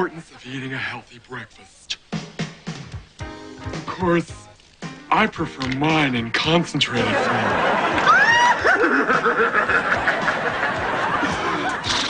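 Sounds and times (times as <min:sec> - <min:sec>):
audience laughing: 0:06.9 - 0:12.0
man's falsetto whoop: 0:08.0 - 0:09.0
warbling vocal sound: 0:11.4 - 0:12.0.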